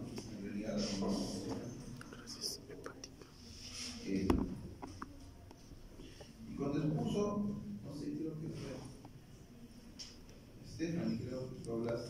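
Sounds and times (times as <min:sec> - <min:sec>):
hushed whispering: 0:00.7 - 0:04.1.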